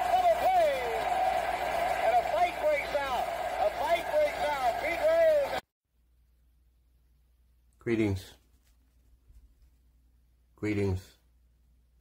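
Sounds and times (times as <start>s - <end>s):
announcer talking: 2.0s - 5.6s.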